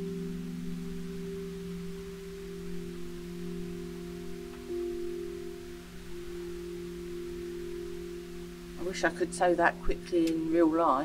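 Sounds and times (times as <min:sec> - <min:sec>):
sustained bell-like drone chords: 0:00.0 - 0:11.0.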